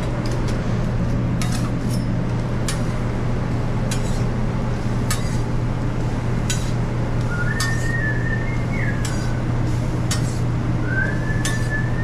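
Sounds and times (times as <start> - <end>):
low kitchen hum: 0.0 - 12.0
metal spatula clicking on griddle: 1.4 - 2.9, 3.9 - 4.2, 5.1 - 5.4, 9.0 - 9.3
high whistled tone: 7.3 - 9.4, 10.8 - 12.0.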